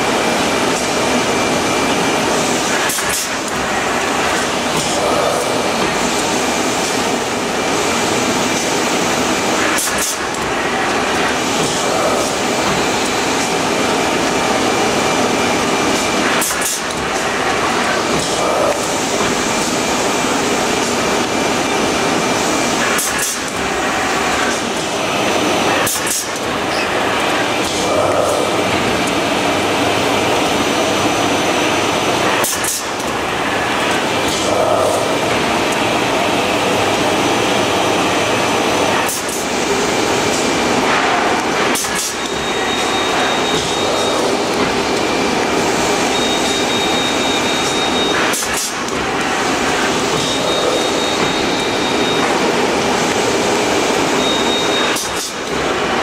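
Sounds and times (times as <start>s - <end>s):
machine mechanical clatter: 2.6s - 7.2s, 9.6s - 14.6s, 15.8s - 21.4s, 22.0s - 25.0s, 25.6s - 29.2s, 32.1s - 35.9s, 40.2s - 53.4s, 54.4s - 56.0s.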